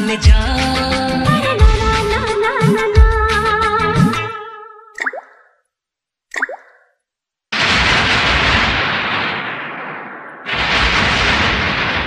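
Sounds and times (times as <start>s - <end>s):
music: 0.0s - 5.0s
water drop plops: 5.0s - 5.6s, 6.3s - 7.0s
heavy rain: 7.6s - 12.0s
thunder crash: 7.6s - 12.0s.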